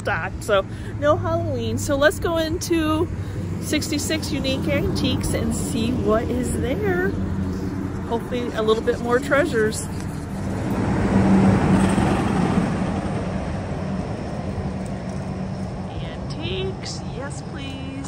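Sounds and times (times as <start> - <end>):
low traffic rumble: 0.0 - 18.0
car driving past: 4.4 - 16.3.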